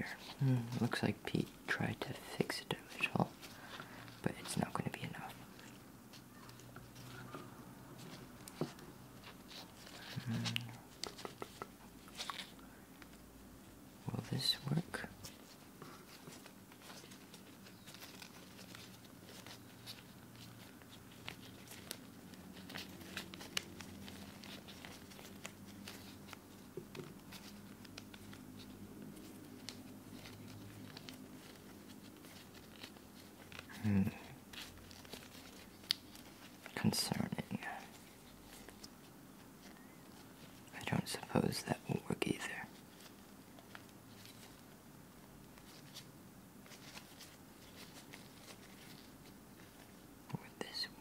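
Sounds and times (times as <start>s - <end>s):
person speaking: 0.0s - 12.4s, 14.0s - 16.4s, 33.6s - 34.5s, 36.6s - 38.2s, 40.7s - 42.8s, 50.3s - 51.0s
latex gloves crinkling: 0.0s - 51.0s.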